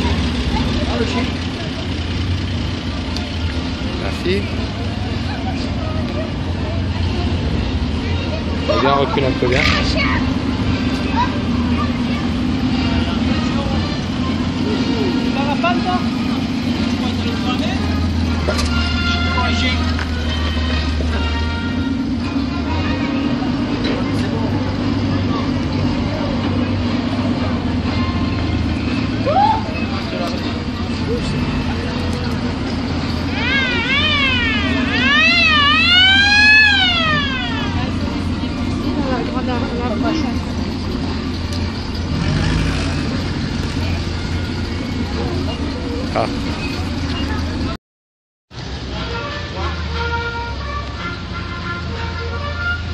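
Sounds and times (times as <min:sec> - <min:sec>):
onlookers' voices: 0:00.0 - 0:47.8, 0:48.6 - 0:52.4
vehicle engines running: 0:00.0 - 0:47.8, 0:48.5 - 0:52.9.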